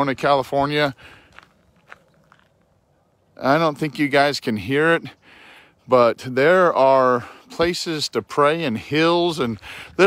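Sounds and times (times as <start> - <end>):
faint footsteps: 0.5 - 4.2, 9.3 - 10.0.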